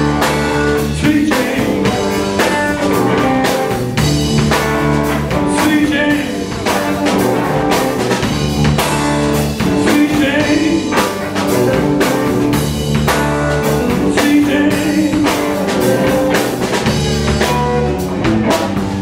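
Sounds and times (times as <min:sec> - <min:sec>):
drum kit steady beat: 0:00.0 - 0:19.0
electric bass: 0:00.0 - 0:19.0
electric guitar: 0:00.0 - 0:19.0.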